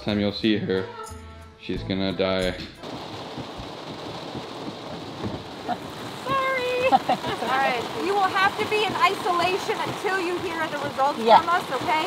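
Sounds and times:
rain pattering on car roof: 2.8s - 12.0s.

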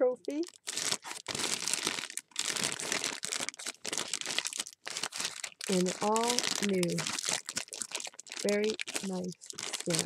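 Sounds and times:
plastic bags crinkling: 0.2s - 10.0s.

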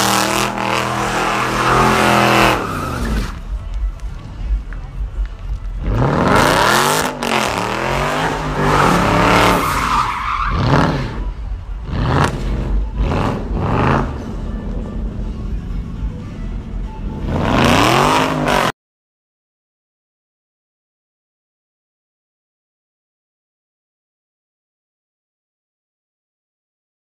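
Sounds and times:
car engine revving: 0.0s - 3.6s, 5.8s - 16.2s, 16.8s - 18.7s
tyres squealing on pavement: 0.0s - 3.8s, 5.9s - 15.1s.

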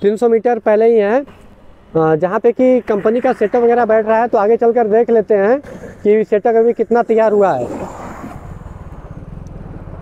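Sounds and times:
car passing by: 2.3s - 4.4s, 5.6s - 10.0s.

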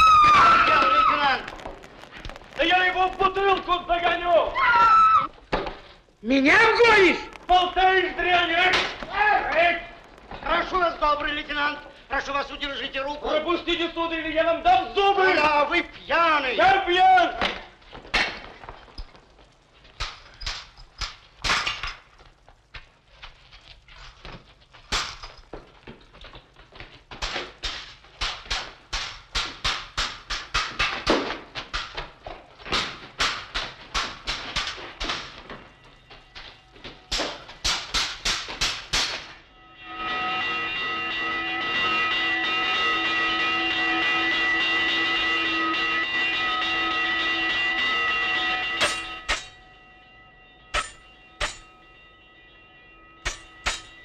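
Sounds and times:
ringing held pitches: 39.4s - 54.0s
sword blades clashing: 48.8s - 49.6s, 50.7s - 51.7s, 53.2s - 54.0s.

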